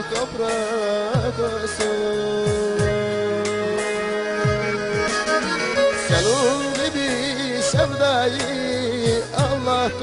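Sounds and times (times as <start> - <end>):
bowed fiddle ornamented melody: 0.0 - 10.0
held accompanying tones: 0.0 - 10.0.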